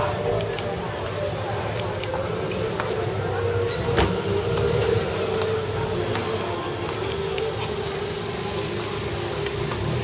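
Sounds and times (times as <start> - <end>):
traffic hum: 0.0 - 10.0.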